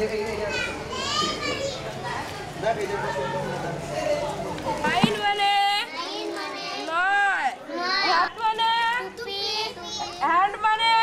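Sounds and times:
child reciting words: 0:09.0 - 0:10.2.

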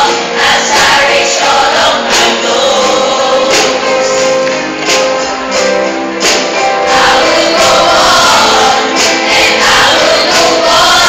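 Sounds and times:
children singing in unison: 0:00.0 - 0:04.2, 0:06.8 - 0:11.0.

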